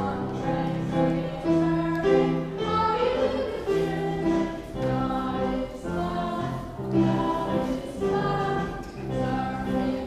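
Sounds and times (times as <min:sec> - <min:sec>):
children's choir singing a hymn: 0:00.0 - 0:10.0
piano and band accompaniment: 0:00.0 - 0:10.0.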